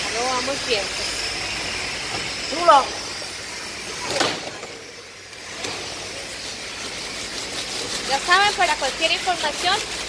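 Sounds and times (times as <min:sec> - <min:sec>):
factory machinery noise: 0:00.0 - 0:10.0.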